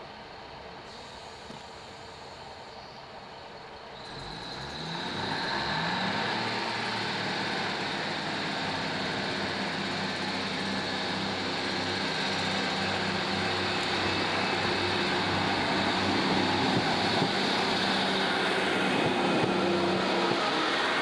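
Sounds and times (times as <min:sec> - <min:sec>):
diesel train engines droning: 0:00.0 - 0:21.0.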